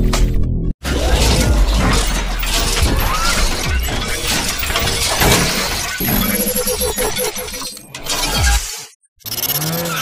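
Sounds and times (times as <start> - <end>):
music: 0.0 - 0.8.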